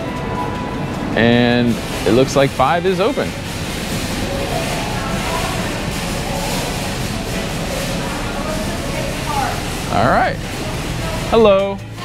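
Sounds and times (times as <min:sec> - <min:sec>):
faint distant voices: 0:00.0 - 0:12.0
supermarket background noise: 0:00.0 - 0:12.0.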